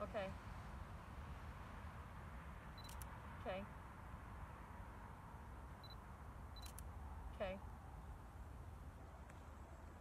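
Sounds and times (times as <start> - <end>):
camera focus beep: 2.8 - 3.1, 5.8 - 6.0, 6.6 - 6.9
camera shutter double click: 2.8 - 3.1, 6.6 - 6.9.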